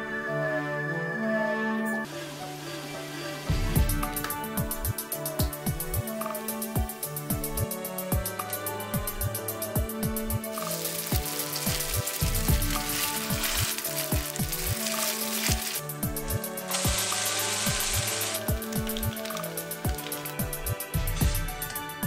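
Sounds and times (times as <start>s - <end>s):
electronic music with steady beat: 3.5s - 22.0s
pancake sizzling in a pan: 10.5s - 15.9s, 16.6s - 20.6s.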